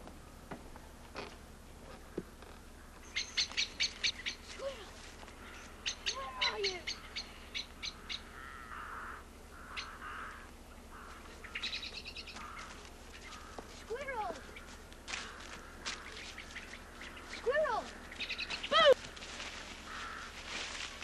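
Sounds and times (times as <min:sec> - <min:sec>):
birds chirping: 0:00.2 - 0:21.0
hoarse bird calls: 0:01.9 - 0:21.0.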